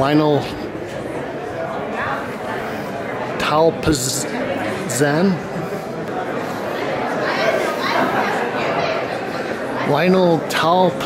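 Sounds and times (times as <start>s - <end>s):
background chatter of many people: 0.0s - 11.0s.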